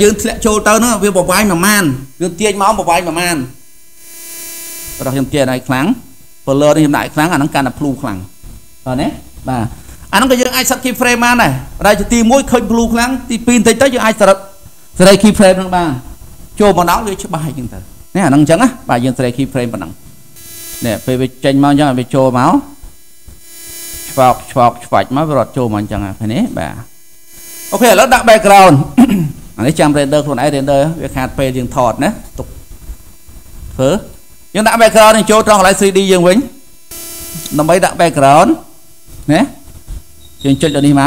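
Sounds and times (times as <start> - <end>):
man speaking: 0.0 - 3.6, 5.0 - 20.0, 20.8 - 22.8, 24.2 - 26.9, 27.7 - 32.6, 33.8 - 36.6, 37.4 - 39.6, 40.4 - 41.0
man talking: 0.0 - 3.6, 5.0 - 20.0, 20.8 - 22.8, 24.2 - 26.9, 27.7 - 32.5, 33.8 - 36.6, 37.4 - 39.6, 40.4 - 41.0
electrical hum: 0.0 - 41.0
faint hiss: 0.0 - 41.0.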